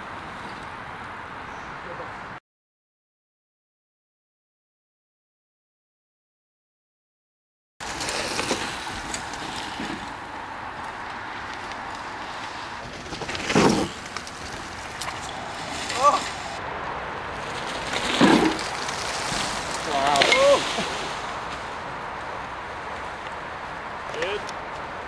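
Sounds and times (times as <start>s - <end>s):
outdoor microphone hiss: 0.0s - 2.4s, 7.8s - 25.0s
people shouting: 15.9s - 16.5s, 19.8s - 21.0s.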